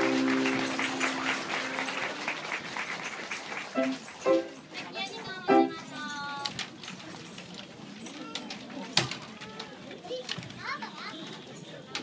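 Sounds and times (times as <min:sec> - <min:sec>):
children chattering: 0:00.0 - 0:02.8, 0:03.7 - 0:12.0
clicks and knocks of instruments: 0:03.0 - 0:12.0.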